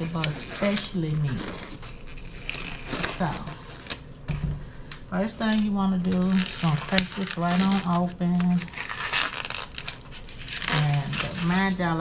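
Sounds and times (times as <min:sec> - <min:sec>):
plastic wrapping crinkling: 0:00.0 - 0:04.2, 0:04.8 - 0:12.0.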